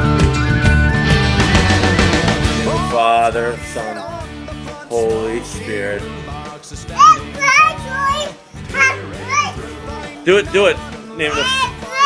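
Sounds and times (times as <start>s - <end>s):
background music: 0.0s - 12.0s
toddler babbling and calling out: 6.9s - 10.1s, 11.2s - 12.0s.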